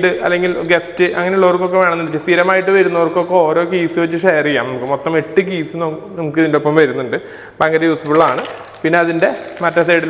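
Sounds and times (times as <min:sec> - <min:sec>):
man talking: 0:00.0 - 0:10.0
plastic packet crinkling: 0:08.1 - 0:10.0.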